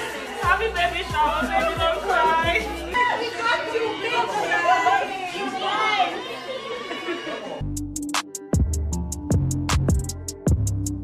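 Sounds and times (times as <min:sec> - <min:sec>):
women chattering excitedly: 0:00.0 - 0:07.6.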